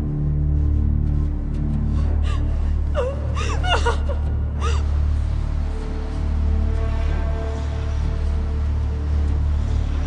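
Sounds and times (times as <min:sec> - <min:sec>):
low music drone: 0:00.0 - 0:10.0
person gasping and whimpering: 0:02.0 - 0:05.0.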